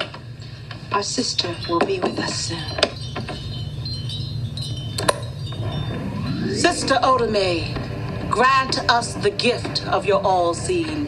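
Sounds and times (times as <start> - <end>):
steady low hum: 0.0 - 11.0
sharp clinks: 1.3 - 7.2
chimes ringing lightly: 1.4 - 7.4.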